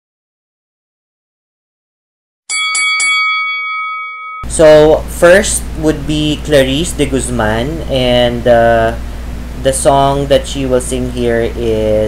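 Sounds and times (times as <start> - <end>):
boxing ring bell: 2.5 - 4.9.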